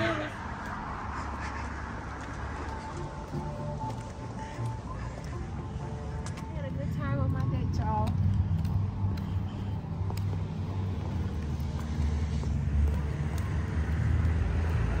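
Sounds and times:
street noise rumble: 0.0 - 15.0.

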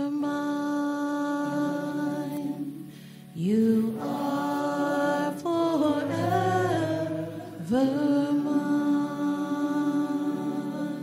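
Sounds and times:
people singing a slow hymn: 0.0 - 11.0.

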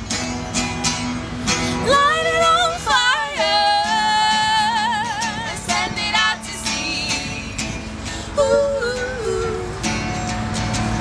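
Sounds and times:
strummed guitar: 0.0 - 11.0
duo singing: 1.7 - 11.0.

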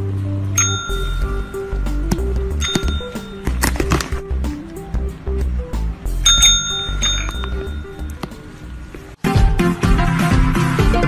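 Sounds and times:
service bell ringing: 0.6 - 3.6, 6.2 - 8.7.

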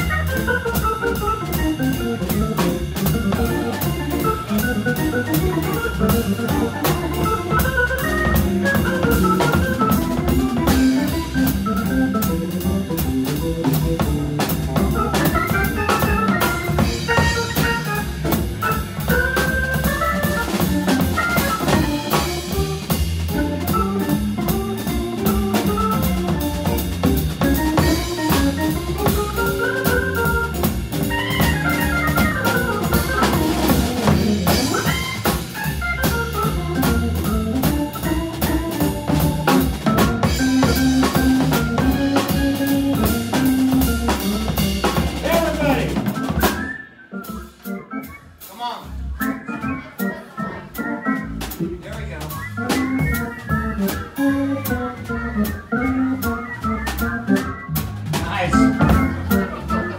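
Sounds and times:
low bass notes: 0.0 - 48.2, 48.8 - 59.9
drum kit with cymbals: 0.0 - 59.9
organ playing fast jazz runs: 0.0 - 59.9.

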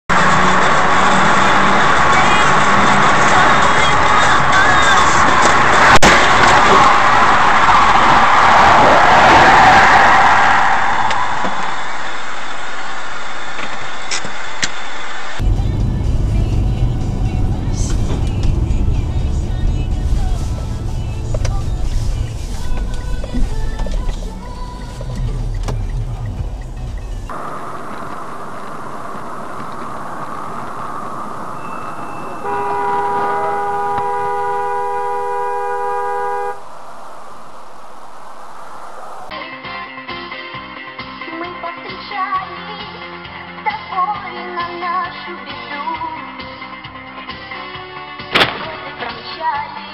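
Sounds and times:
engine and road rumble: 0.1 - 9.2, 11.0 - 39.3
car horn held: 31.6 - 36.8.

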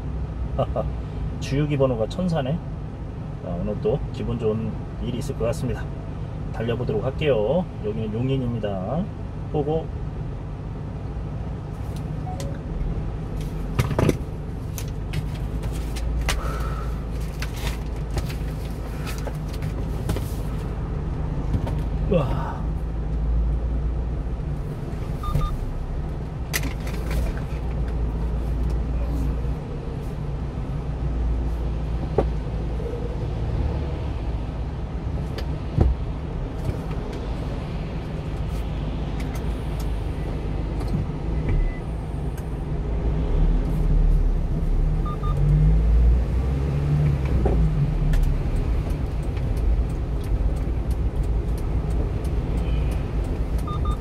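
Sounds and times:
truck engine and tyre rumble: 0.0 - 54.0.

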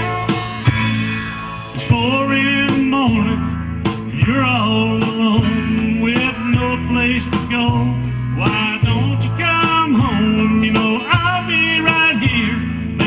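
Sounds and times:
fiddle with sliding notes: 0.0 - 2.4
bass: 0.0 - 13.0
guitar: 0.0 - 13.0.

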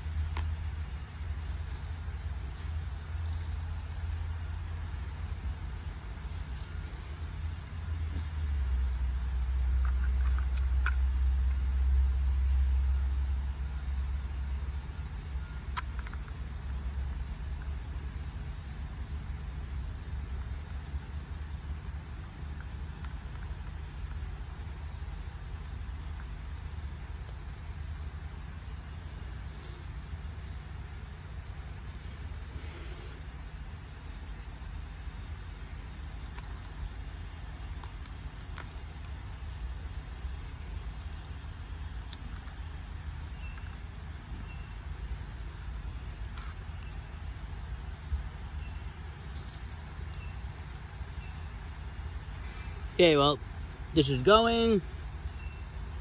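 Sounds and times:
low outdoor background rumble: 0.0 - 56.0
faint high chirps: 55.2 - 56.0.

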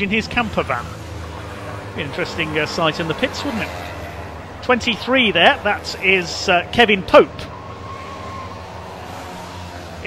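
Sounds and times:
racing car engines droning: 0.0 - 10.0.

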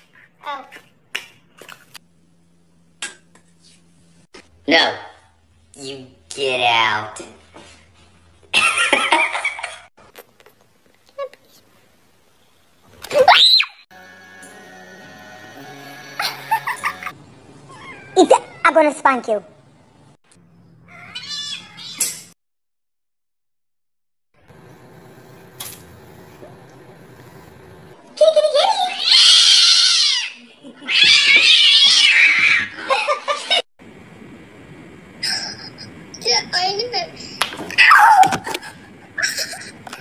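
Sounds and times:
cat yowling: 17.7 - 18.7, 28.9 - 32.7.

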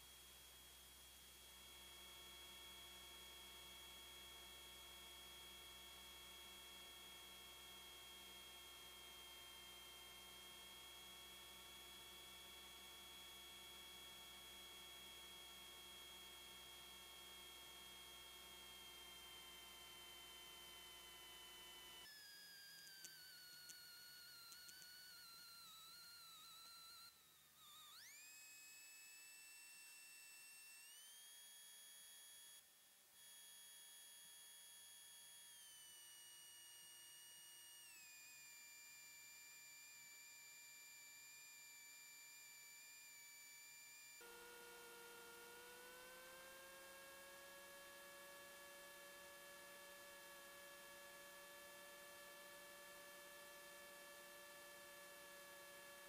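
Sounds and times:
faint electrical whine: 0.0 - 56.0.

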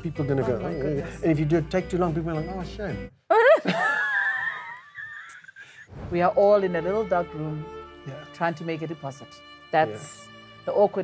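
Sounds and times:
woman laughing high-pitched: 3.3 - 5.8.

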